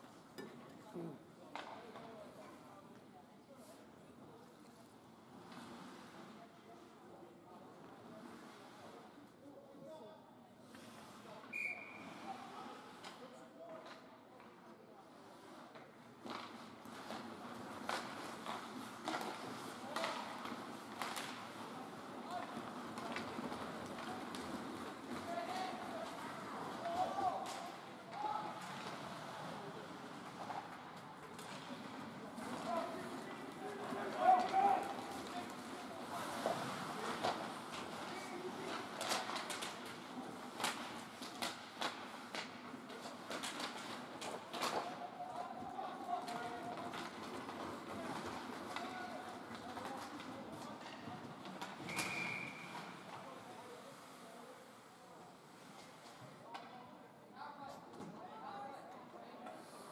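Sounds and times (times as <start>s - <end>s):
hockey sticks and puck clacking: 15.6s - 53.6s.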